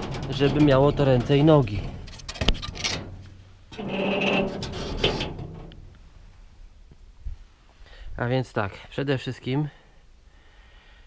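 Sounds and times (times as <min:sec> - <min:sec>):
wooden board scraping metal: 0:00.0 - 0:06.1.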